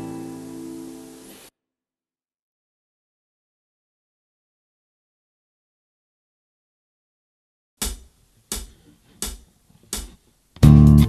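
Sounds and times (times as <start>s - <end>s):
electric bass guitar riff: 0.0s - 1.2s, 10.6s - 11.0s
backing track with drums and guitar: 7.8s - 11.0s.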